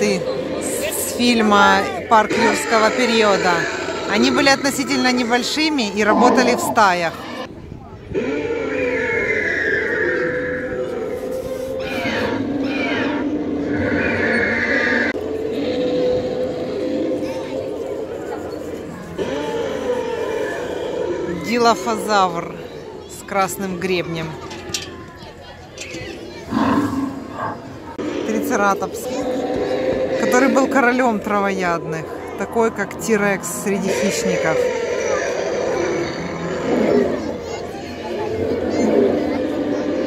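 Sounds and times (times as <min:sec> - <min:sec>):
recorded dinosaur roar: 0:02.2 - 0:07.5, 0:08.1 - 0:11.2, 0:26.5 - 0:30.7, 0:33.3 - 0:37.4
recorded creature screeches and growls: 0:06.0 - 0:07.5.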